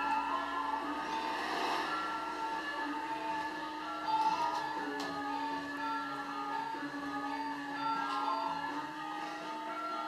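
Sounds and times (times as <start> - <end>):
gamelan music: 0.0 - 10.0.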